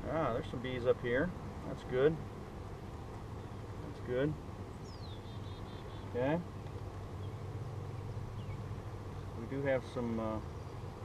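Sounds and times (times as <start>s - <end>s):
honeybees humming: 0.0s - 11.0s
faint bird chirps: 4.7s - 9.3s.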